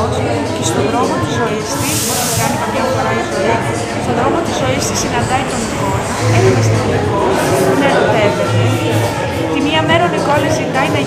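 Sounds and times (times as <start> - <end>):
woman's voice: 0.6 - 11.0
sharp hiss: 1.8 - 2.7.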